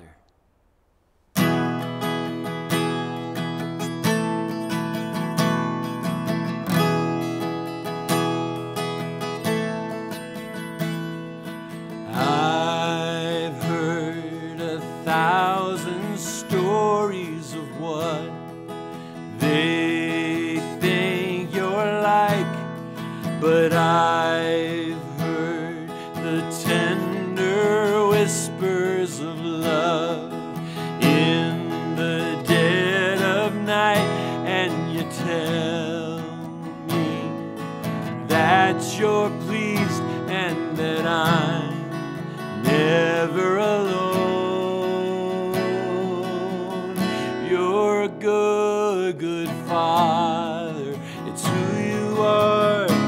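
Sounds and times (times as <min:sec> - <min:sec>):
strummed acoustic guitar: 0:01.3 - 0:53.0
man singing: 0:11.9 - 0:53.0.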